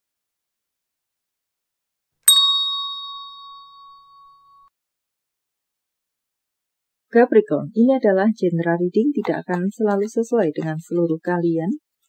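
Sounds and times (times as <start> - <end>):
bell ding: 2.3 - 4.7.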